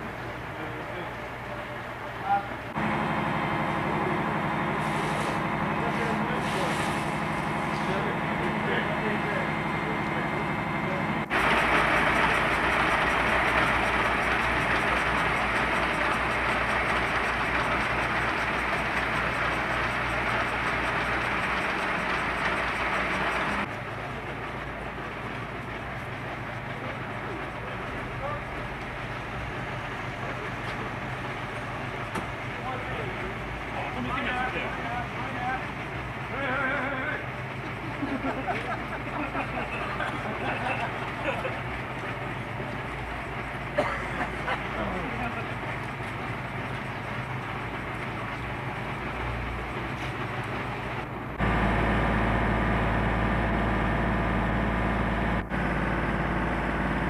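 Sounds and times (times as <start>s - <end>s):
fire engine motors running: 0.0s - 57.0s.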